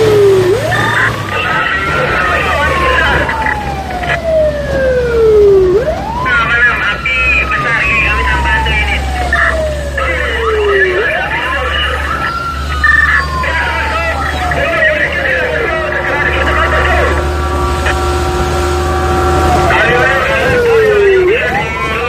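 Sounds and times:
electronic siren wailing: 0.0 - 22.0
vehicle engine humming: 0.0 - 22.0.

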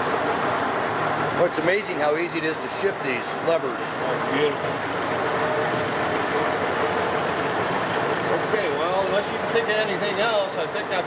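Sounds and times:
lathe running: 0.0 - 11.0
man talking: 8.3 - 11.0.

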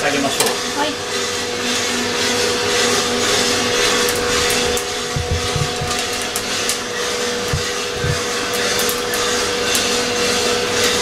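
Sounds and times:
coffee roaster whirring: 0.0 - 11.0
low thumps: 5.0 - 6.2, 7.5 - 8.2.

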